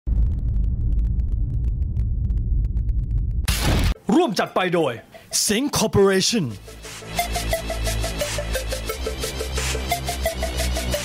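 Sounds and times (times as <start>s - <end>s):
deep rumble: 0.1s - 3.5s.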